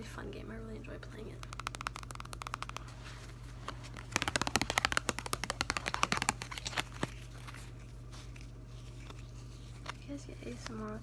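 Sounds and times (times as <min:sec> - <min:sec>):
playing cards riffling: 0:01.4 - 0:10.0.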